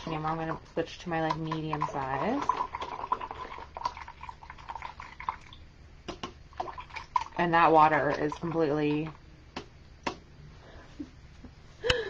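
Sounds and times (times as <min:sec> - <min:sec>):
water sloshing in container: 0:00.0 - 0:09.2.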